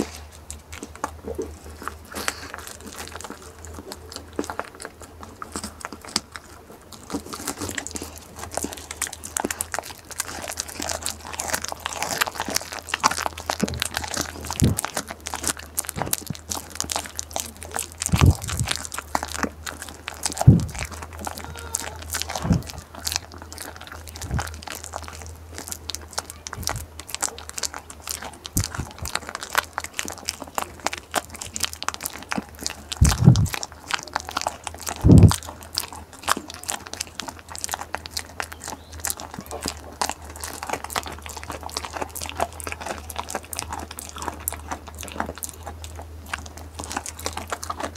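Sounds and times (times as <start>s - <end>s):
goat chewing and crunching: 0.0s - 47.9s.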